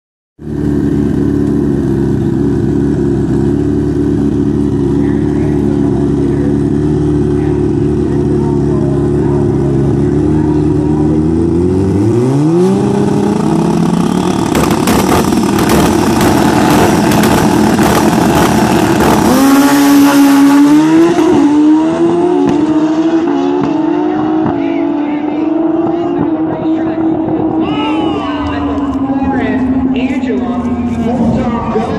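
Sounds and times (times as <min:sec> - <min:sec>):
motorcycles idling and revving: 0:00.4 - 0:31.9
motorcycles launching at full throttle: 0:00.4 - 0:31.9.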